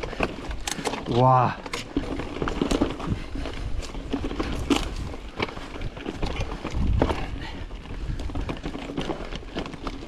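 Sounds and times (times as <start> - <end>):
bike knocks and rattles: 0.0 - 10.0
wind on microphone: 3.0 - 8.7.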